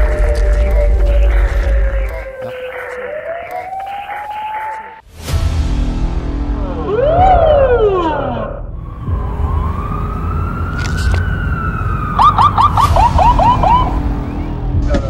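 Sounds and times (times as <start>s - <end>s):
low rumble: 0.0s - 2.4s
police siren wailing and yelping: 0.0s - 5.0s, 6.8s - 14.5s.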